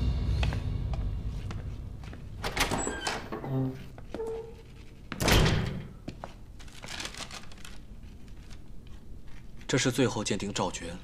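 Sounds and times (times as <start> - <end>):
door swinging shut: 2.4 - 3.8, 5.2 - 5.9.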